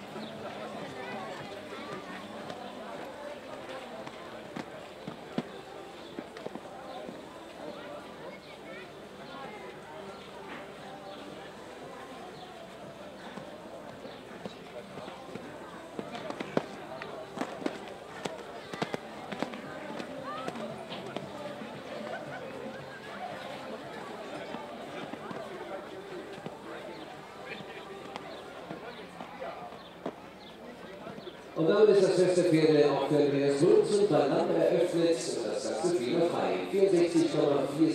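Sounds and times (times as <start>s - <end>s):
murmur of voices: 0.0s - 37.9s
hoofbeats on sand: 12.2s - 22.2s.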